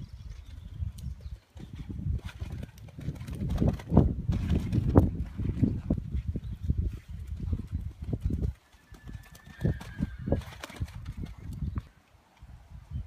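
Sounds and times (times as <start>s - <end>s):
wind rumble on microphone: 0.0s - 13.0s.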